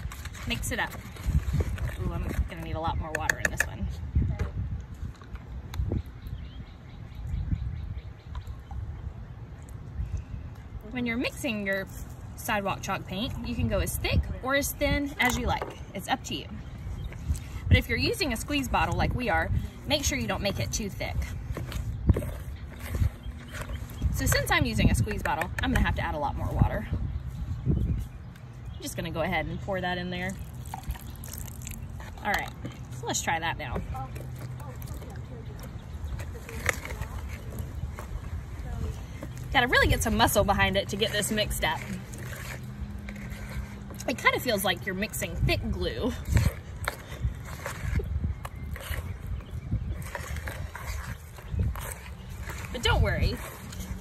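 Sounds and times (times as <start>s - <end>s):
whisk scraping plastic bowl: 39.2s - 54.0s.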